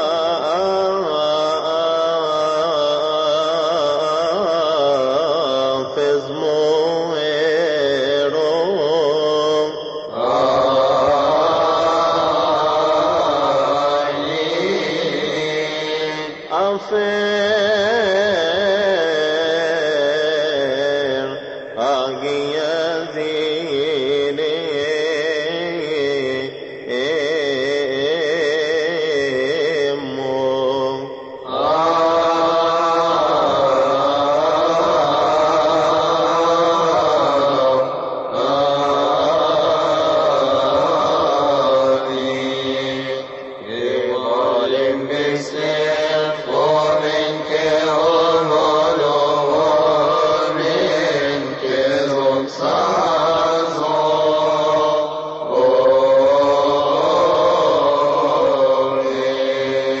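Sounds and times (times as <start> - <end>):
liturgical chant: 0.0 - 60.0.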